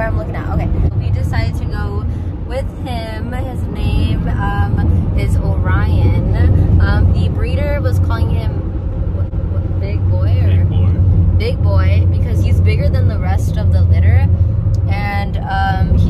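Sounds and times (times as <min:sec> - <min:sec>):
van driving rumble: 0:00.0 - 0:16.0.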